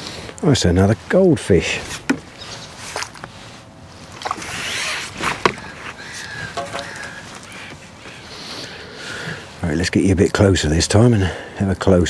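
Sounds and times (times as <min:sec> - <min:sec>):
water splashing: 0:04.0 - 0:07.6.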